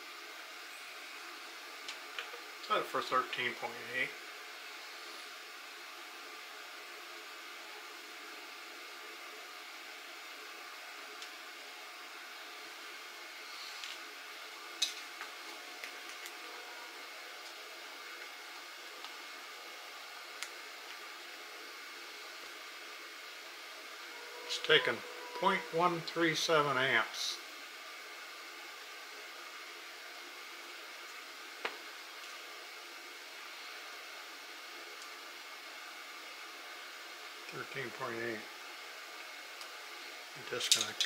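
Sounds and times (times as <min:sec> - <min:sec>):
electrical equipment fan hum: 0:00.0 - 0:41.0.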